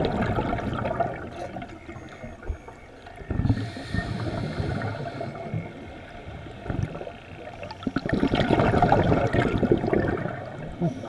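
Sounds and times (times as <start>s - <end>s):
underwater bubbling: 0.0s - 11.0s.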